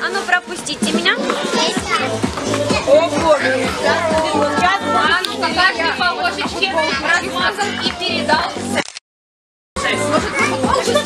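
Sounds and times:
children chattering and calling out: 0.0s - 8.8s, 9.8s - 11.0s
music with repeating bass note: 0.9s - 7.6s.

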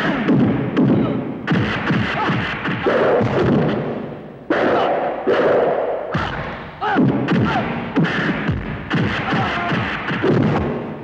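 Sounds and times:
punch and kick impacts: 6.2s - 10.7s.

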